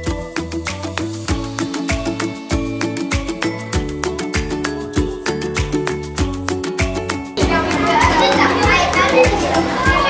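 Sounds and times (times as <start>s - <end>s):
background music with steady beat: 0.0s - 10.0s
children chattering and calling out: 7.4s - 10.0s.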